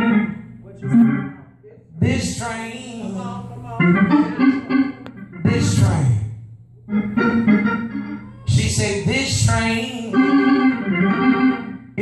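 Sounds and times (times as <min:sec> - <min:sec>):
faint music: 0:00.0 - 0:12.0
man preaching over pa: 0:05.4 - 0:06.4, 0:08.4 - 0:10.1.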